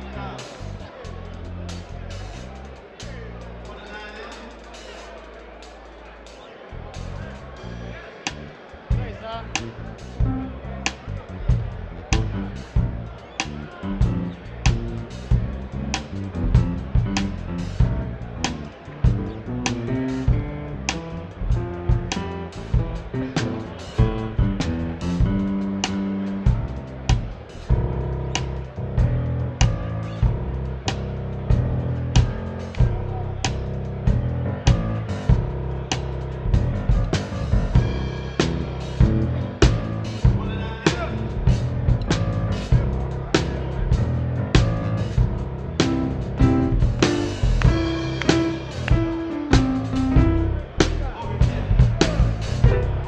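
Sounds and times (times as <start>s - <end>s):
gospel band jamming: 0.0s - 53.0s
steady bass line: 0.0s - 53.0s.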